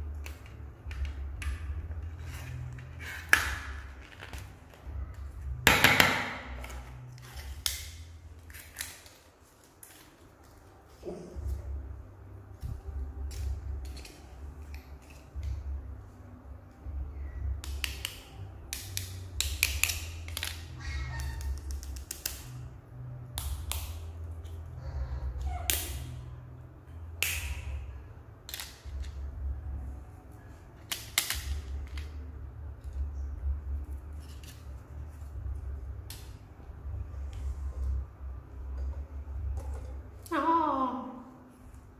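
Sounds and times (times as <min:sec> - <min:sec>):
steady low rumble: 0:10.9 - 0:21.7, 0:31.4 - 0:40.3.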